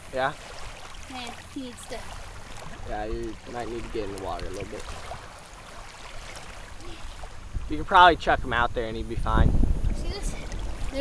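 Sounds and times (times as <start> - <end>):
water sloshing: 0.0 - 11.0
low steady rumble: 6.7 - 11.0.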